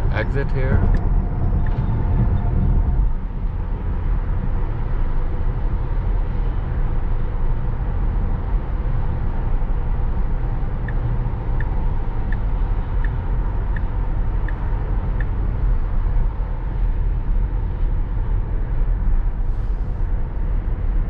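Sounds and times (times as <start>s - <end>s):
road and tyre noise: 0.0s - 21.0s.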